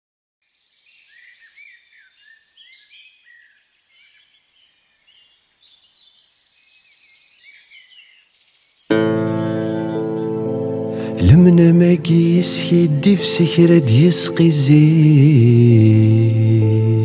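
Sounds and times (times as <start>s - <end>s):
songbirds singing and chirping: 0.4s - 17.0s.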